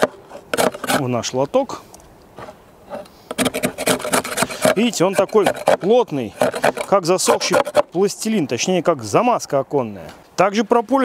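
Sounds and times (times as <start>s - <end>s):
knife scraping wooden frame: 0.0s - 1.2s, 2.4s - 8.1s.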